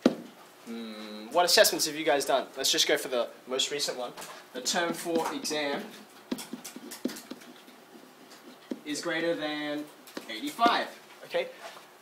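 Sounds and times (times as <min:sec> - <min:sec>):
stylus tapping on whiteboard: 0:06.3 - 0:08.9.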